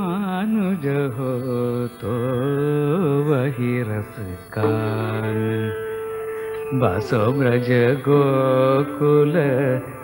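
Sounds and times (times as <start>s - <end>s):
sustained accompanying tone: 0.9s - 10.0s
low voice singing long note: 4.6s - 10.0s.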